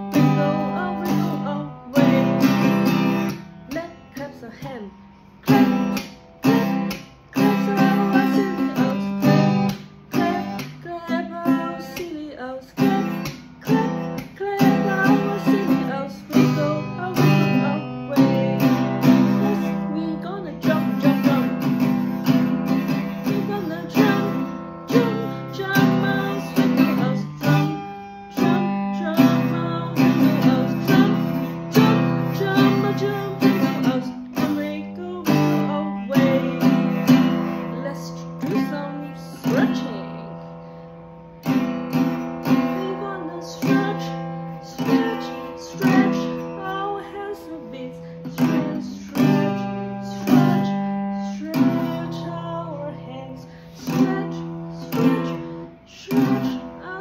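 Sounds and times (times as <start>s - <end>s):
acoustic guitar strumming chords: 0.0s - 57.0s.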